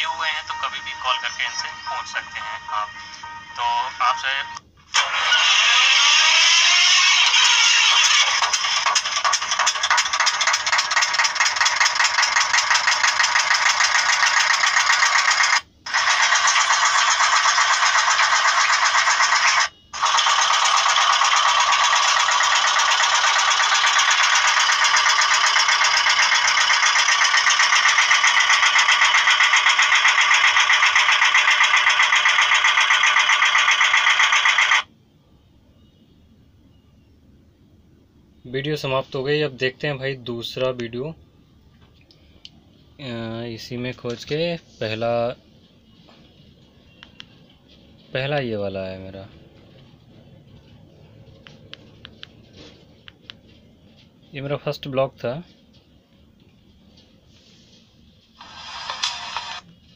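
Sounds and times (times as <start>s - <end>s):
mill machinery running: 5.0s - 34.9s.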